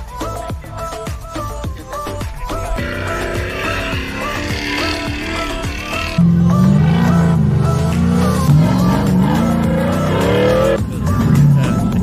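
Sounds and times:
background music: 0:00.0 - 0:12.0
truck engine running hard: 0:02.3 - 0:12.0.

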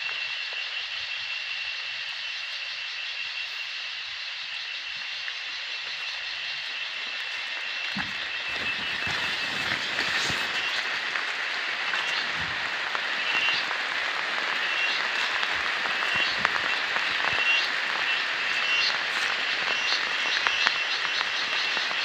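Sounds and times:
frogs calling: 0:00.0 - 0:22.0.

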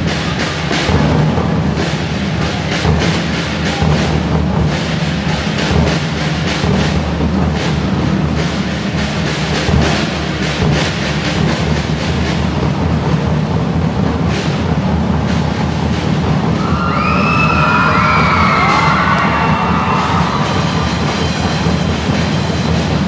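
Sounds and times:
drum kit solo: 0:00.0 - 0:23.0
audience shouting: 0:16.6 - 0:21.7.

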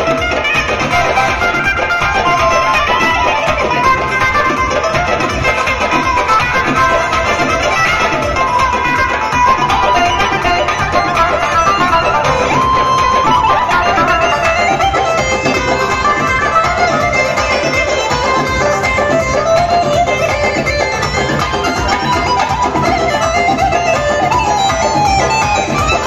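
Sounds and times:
amplified band dance music: 0:00.0 - 0:26.0
electric guitar and keyboard melody: 0:00.0 - 0:26.0
frame drum and large drum beat: 0:00.0 - 0:26.0.

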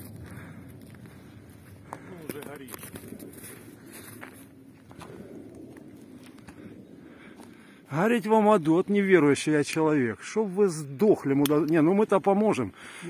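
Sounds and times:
footsteps on snow: 0:00.0 - 0:08.9
outdoor background noise: 0:00.0 - 0:13.0.

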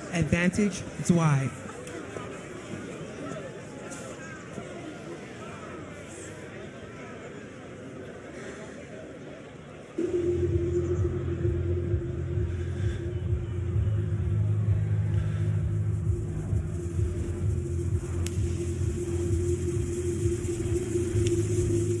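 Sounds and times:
low synthesized drone: 0:10.0 - 0:22.0
faint ticks: 0:18.1 - 0:21.8.

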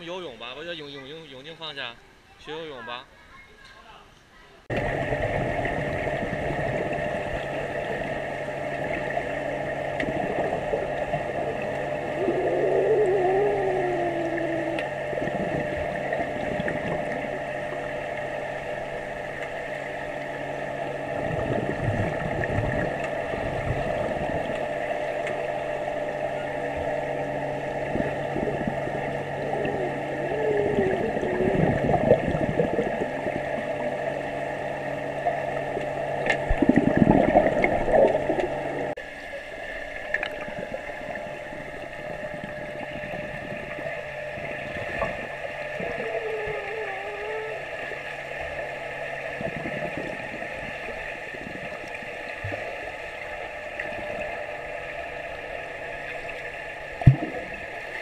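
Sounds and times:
muffled splashing and gurgling: 0:04.6 - 0:58.0
muffled wavering sounds: 0:04.7 - 0:58.0
underwater machine hum: 0:04.7 - 0:58.0.

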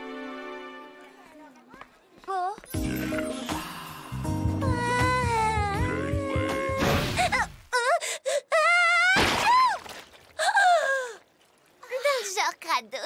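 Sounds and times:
girl crying and groaning: 0:03.2 - 0:09.8.

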